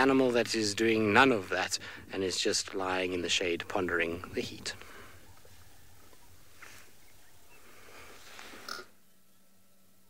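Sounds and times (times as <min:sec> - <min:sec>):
soft animal sound: 0:04.2 - 0:09.0.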